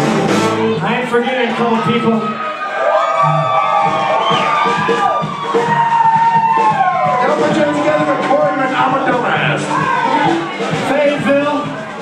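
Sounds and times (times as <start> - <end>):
drums keeping a beat: 0.0 - 12.0
lead notes bending in pitch: 3.1 - 3.9.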